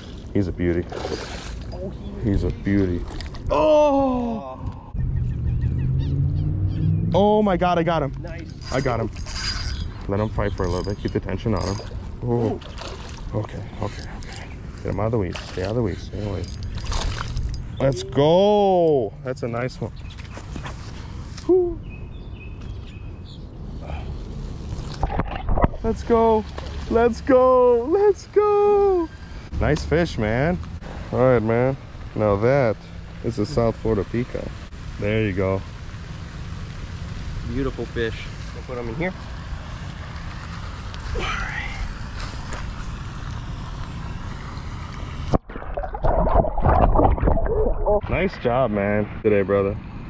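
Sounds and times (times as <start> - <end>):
water splashing at bank: 0.0 - 1.9, 10.7 - 13.6, 44.7 - 48.0
fish splashing into water: 45.2 - 47.7.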